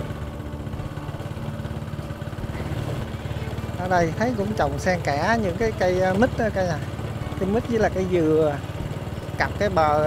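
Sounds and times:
motorbike engine rumbling: 0.0s - 10.0s.

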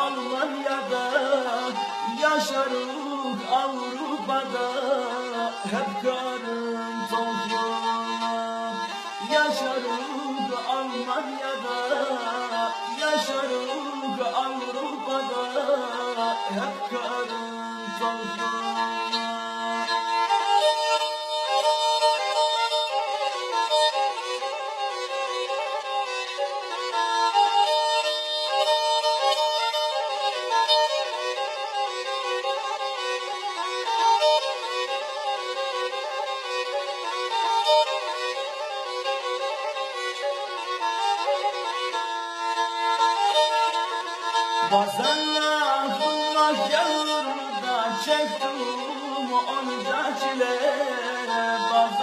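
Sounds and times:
person singing: 0.0s - 24.2s, 44.6s - 52.0s
bowed fiddle folk melody: 0.0s - 52.0s.

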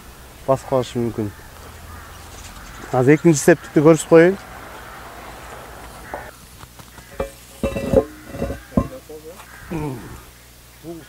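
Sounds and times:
metal manhole cover knocking: 7.0s - 9.0s
metal scraping: 7.1s - 9.0s.

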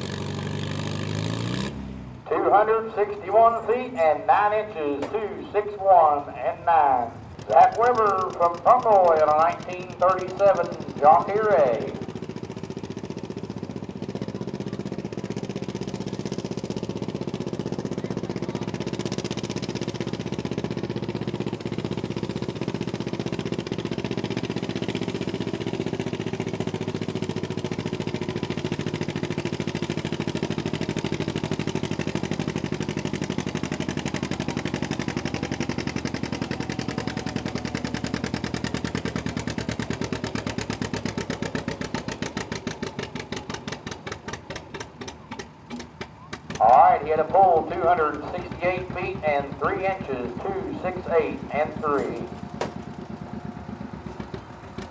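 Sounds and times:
tractor engine running under load: 0.0s - 54.9s.

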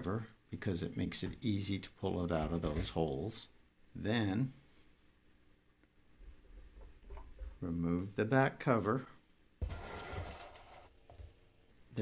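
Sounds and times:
plastic cover scraping rustle: 9.6s - 10.9s.

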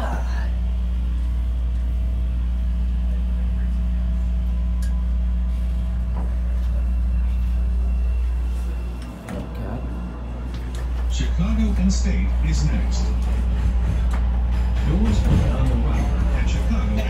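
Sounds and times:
faint hum: 0.0s - 13.4s
subway train rumble: 0.0s - 17.0s.

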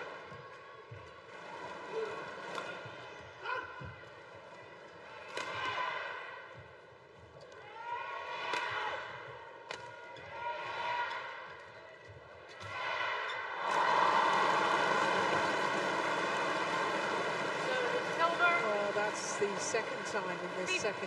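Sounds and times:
crowd cheering: 12.6s - 21.0s.

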